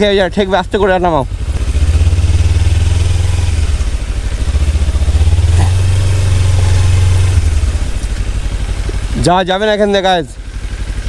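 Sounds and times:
motorcycle engine running at low revs: 0:00.0 - 0:11.0.

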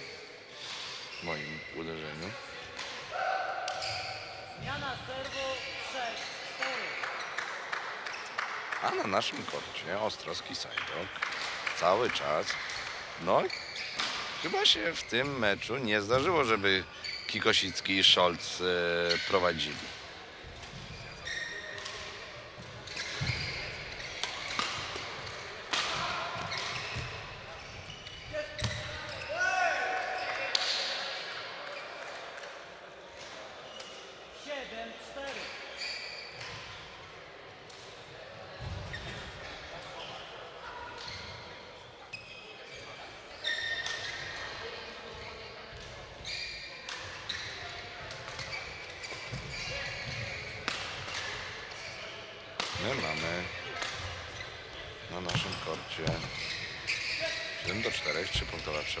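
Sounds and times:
voices and chatter: 0:00.0 - 0:59.0
loud shout: 0:29.3 - 0:30.4.

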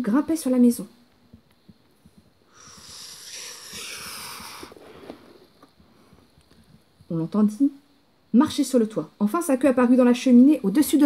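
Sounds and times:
person blowing out a breath: 0:02.5 - 0:05.4.

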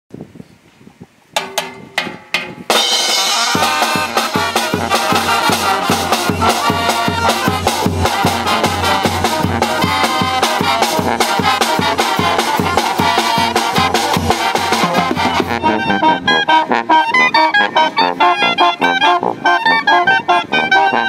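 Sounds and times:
drum strokes: 0:01.4 - 0:15.6
brass band playing: 0:02.7 - 0:21.0.

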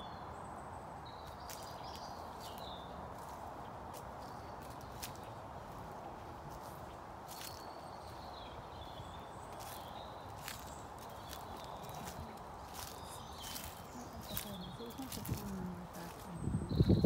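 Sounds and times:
outdoor background hiss: 0:00.0 - 0:16.8
small birds calling: 0:00.0 - 0:17.0
footsteps on leafy grass: 0:01.3 - 0:17.0.

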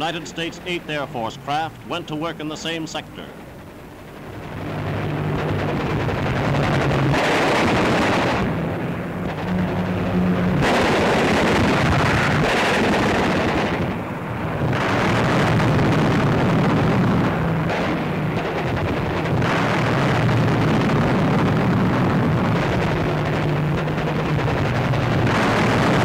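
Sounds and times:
aircraft engine drone: 0:00.0 - 0:26.0
explosions: 0:04.2 - 0:26.0
gunfire: 0:06.0 - 0:26.0.

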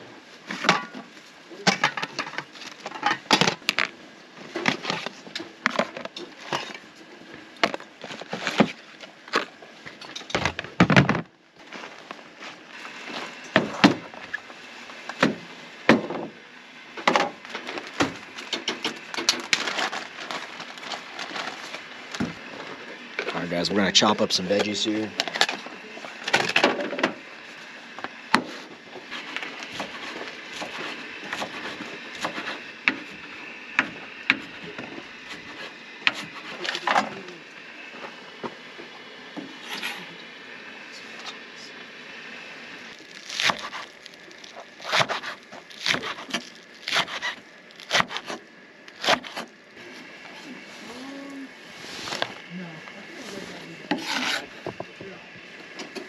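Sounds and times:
knife chopping on wooden board: 0:44.9 - 0:47.3.

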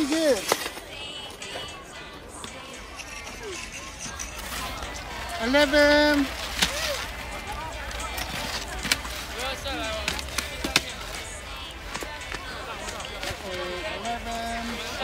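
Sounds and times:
skis and poles clicking on snow: 0:00.0 - 0:01.7, 0:02.4 - 0:15.0
crowd calling in the distance: 0:00.0 - 0:15.0.

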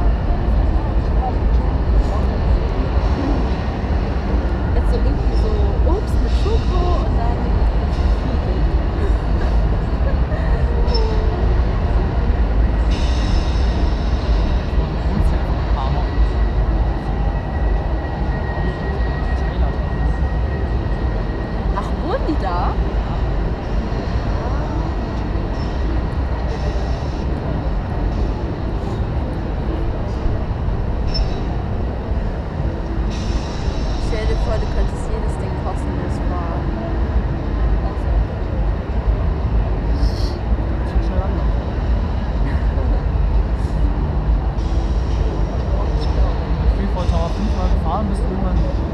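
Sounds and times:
faint fairground sounds: 0:00.0 - 0:48.9.

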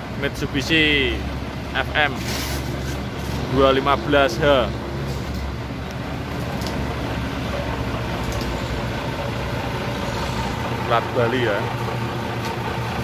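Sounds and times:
diesel truck engine idling: 0:00.0 - 0:13.0.

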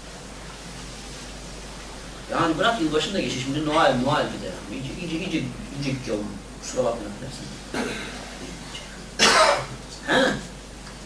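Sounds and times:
man coughing: 0:07.7 - 0:08.2, 0:09.2 - 0:10.5.

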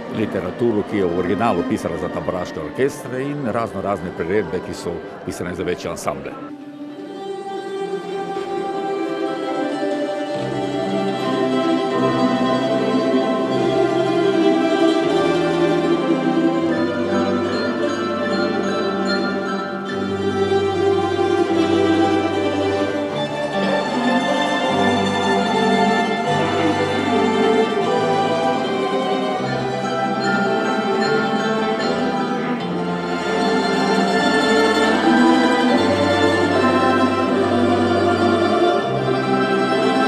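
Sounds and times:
plucked string ensemble: 0:00.0 - 0:40.0.

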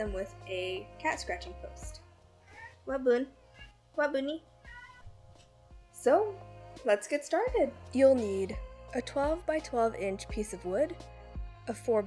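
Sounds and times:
cat meowing: 0:02.4 - 0:02.8, 0:03.5 - 0:03.8, 0:04.6 - 0:05.2.

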